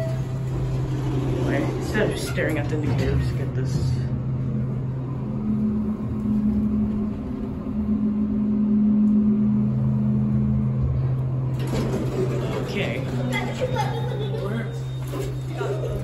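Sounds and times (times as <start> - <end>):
elevator doors opening: 0.0 - 16.0
elevator hum with low rumble: 0.0 - 16.0
higher hum: 3.3 - 14.9.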